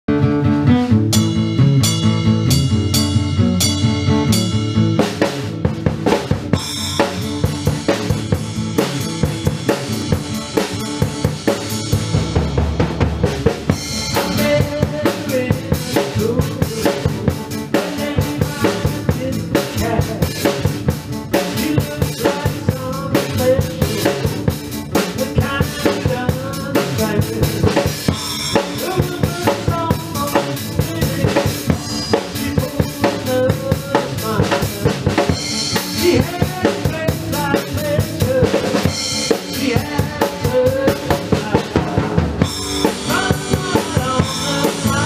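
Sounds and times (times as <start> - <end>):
acoustic guitar chords: 0.1 - 45.0
drum kit beat: 0.6 - 45.0.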